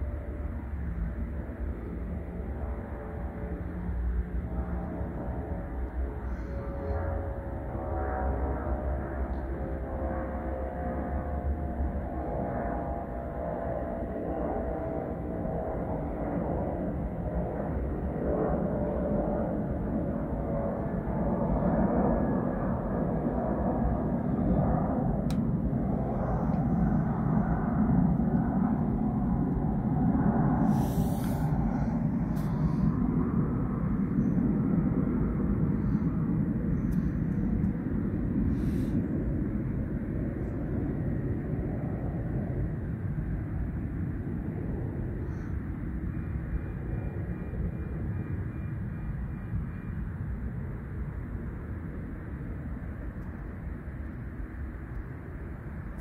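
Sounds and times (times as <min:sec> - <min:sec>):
airplane passing overhead: 0:00.0 - 0:56.0.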